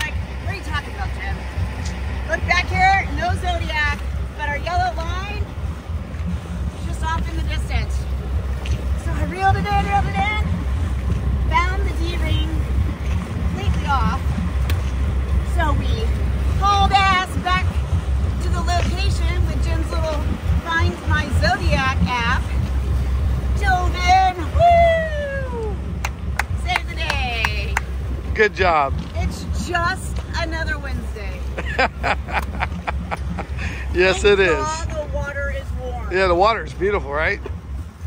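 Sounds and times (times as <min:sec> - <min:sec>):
woman talking: 0:00.0 - 0:01.5, 0:02.2 - 0:05.5, 0:06.8 - 0:08.1, 0:09.0 - 0:10.6, 0:11.4 - 0:12.7, 0:13.5 - 0:14.3, 0:15.5 - 0:22.7, 0:23.5 - 0:25.8, 0:26.5 - 0:27.8, 0:29.0 - 0:31.5, 0:34.0 - 0:36.1
motor yacht engine rumble: 0:00.0 - 0:38.0.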